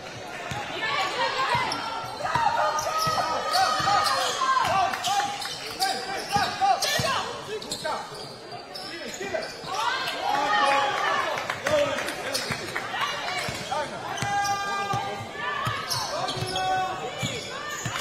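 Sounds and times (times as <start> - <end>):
players calling out: 0.2 - 18.0
sneaker squeaks: 0.5 - 10.0, 13.4 - 18.0.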